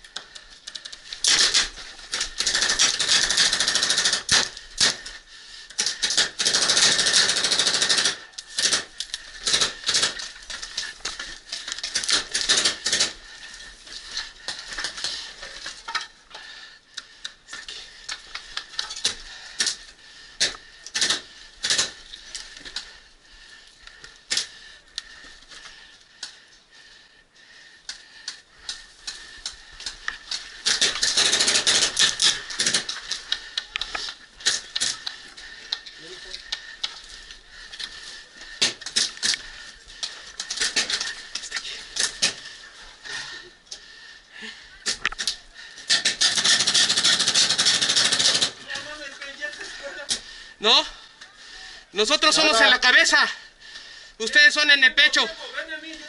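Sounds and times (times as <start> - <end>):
paintball markers firing: 0.7 - 5.1, 20.4 - 22.0, 30.6 - 35.2, 44.9 - 48.6.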